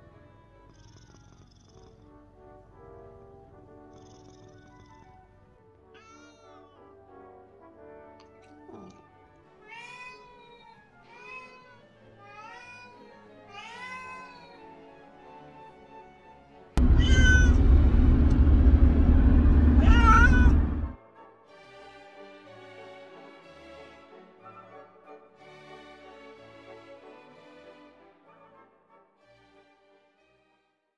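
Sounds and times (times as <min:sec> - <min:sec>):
soft background music: 0:00.0 - 0:16.8, 0:21.0 - 0:30.9
cat meowing: 0:05.9 - 0:06.8, 0:09.6 - 0:14.8, 0:16.8 - 0:17.7, 0:19.7 - 0:20.9
loud steady noise: 0:16.8 - 0:21.0.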